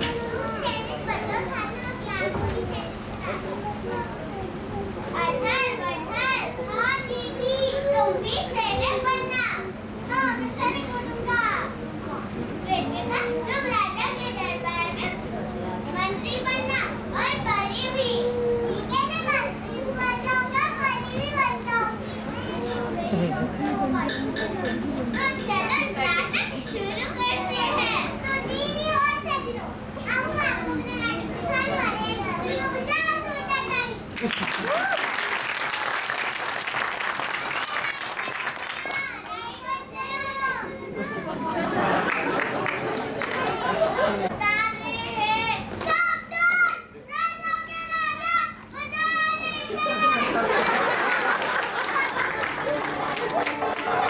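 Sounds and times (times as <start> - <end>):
children talking: 0.0 - 54.0
clapping: 34.2 - 39.8, 42.0 - 44.0, 50.7 - 54.0.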